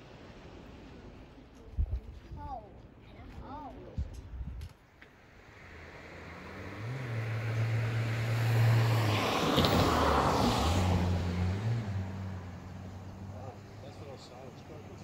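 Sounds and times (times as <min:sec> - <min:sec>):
car driving past: 0:05.2 - 0:15.0.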